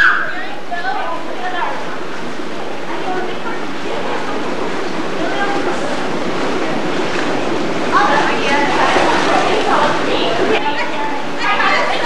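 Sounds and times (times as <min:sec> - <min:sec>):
water splashing in pool: 0:00.0 - 0:12.0.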